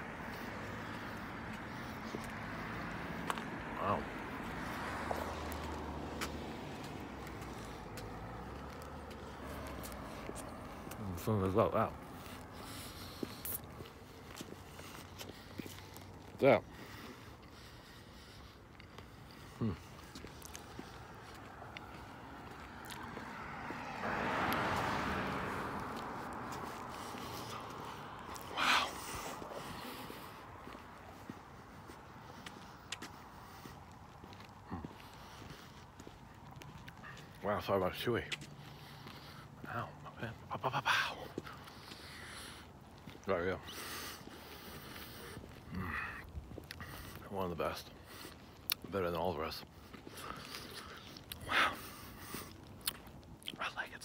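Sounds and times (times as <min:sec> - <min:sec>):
road traffic rumble: 0:00.0 - 0:54.0
person chewing crunchy candy: 0:50.0 - 0:51.8.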